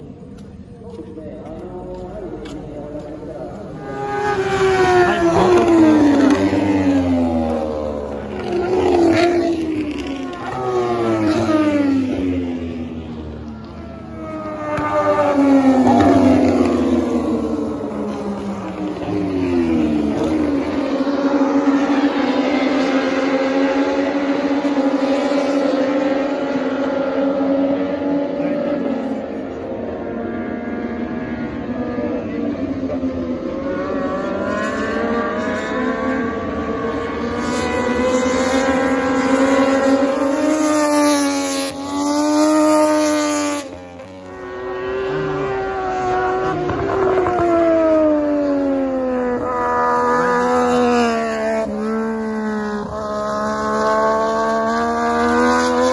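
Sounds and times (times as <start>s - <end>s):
racing motorcycle engines revving: 0.0s - 55.9s.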